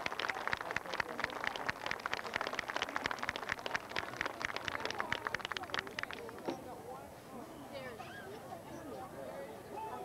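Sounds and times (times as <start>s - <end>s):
audience clapping: 0.0s - 6.4s.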